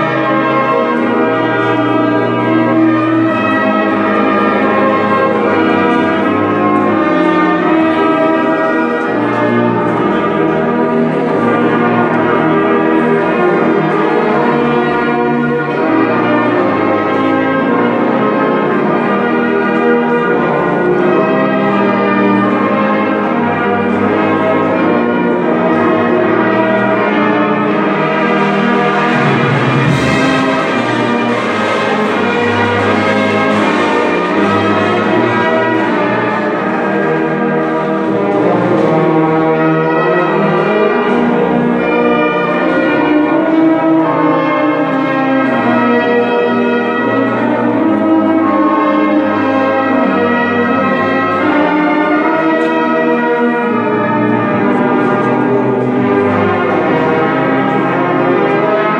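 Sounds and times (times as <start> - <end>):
brass band playing chords: 0.0 - 58.9.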